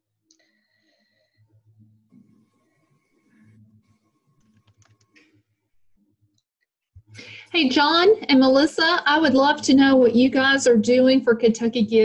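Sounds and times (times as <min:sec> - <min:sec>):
computer keyboard typing: 0:04.4 - 0:05.2.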